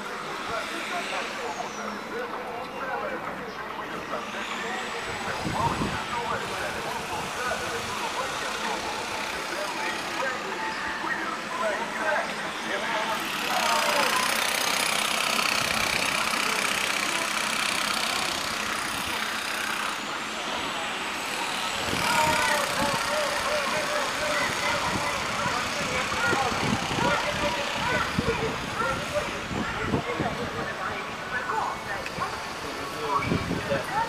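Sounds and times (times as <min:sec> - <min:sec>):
indistinct voices of passers-by: 0:00.0 - 0:34.0
steady rush of noise: 0:00.0 - 0:34.0.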